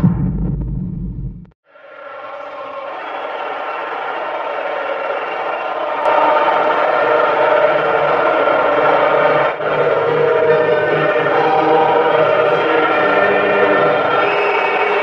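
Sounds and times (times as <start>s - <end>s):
stadium crowd roar: 1.6s - 15.0s.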